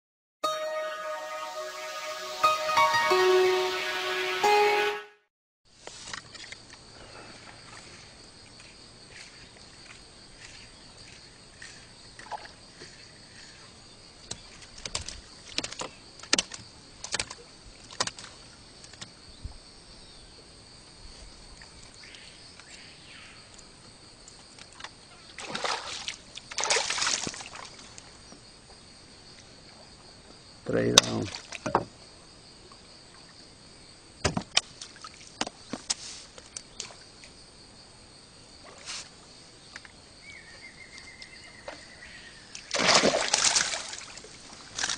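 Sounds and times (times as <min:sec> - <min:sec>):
music jingle: 0:00.4 - 0:05.3
splashing water: 0:25.3 - 0:28.0, 0:42.6 - 0:44.9
fish splashing out of water: 0:25.4 - 0:27.8, 0:42.7 - 0:44.9.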